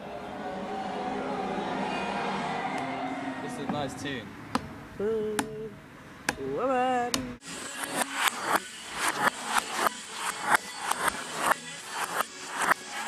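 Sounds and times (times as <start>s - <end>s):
rhythmic rasping scraping strokes: 7.4s - 13.0s.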